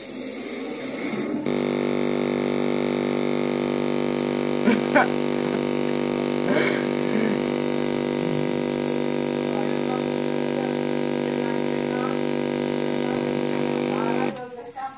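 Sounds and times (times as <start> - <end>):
loud steady speaker buzz: 1.4 - 14.9.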